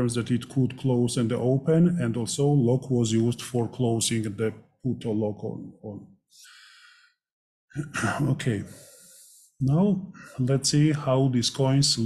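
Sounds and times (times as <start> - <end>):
man breathing: 6.3 - 7.2, 8.6 - 10.4
man clearing his throat: 7.8 - 8.7.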